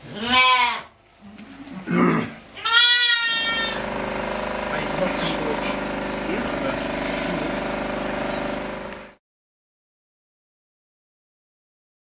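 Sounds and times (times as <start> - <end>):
sheep bleating: 0.1 - 0.9, 1.9 - 3.8
droning hum with many tones: 3.2 - 9.2.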